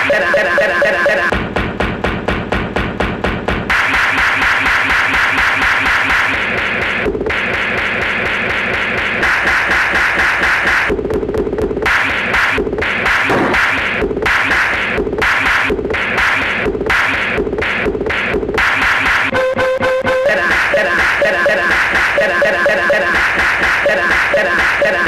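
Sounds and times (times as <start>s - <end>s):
stuttering chopped music loop: 0.0s - 25.0s.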